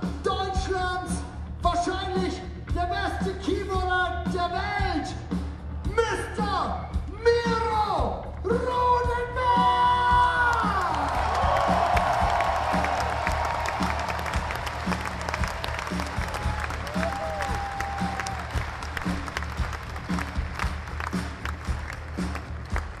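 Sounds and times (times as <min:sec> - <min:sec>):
crowd applauding and cheering: 0:09.6 - 0:23.0.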